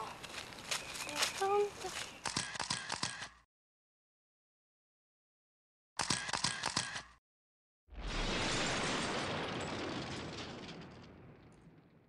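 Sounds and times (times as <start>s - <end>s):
boom with deep rumble: 7.9s - 12.0s.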